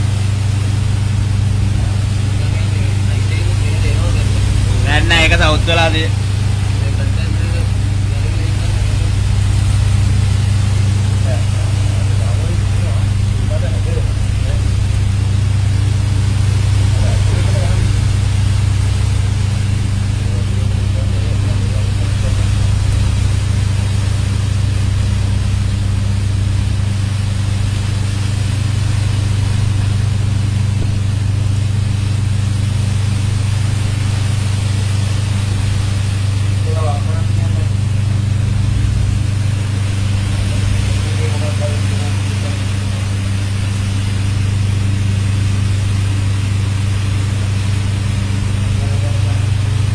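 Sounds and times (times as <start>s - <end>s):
boat engine droning: 0.0s - 49.9s
churning sea: 0.0s - 49.9s.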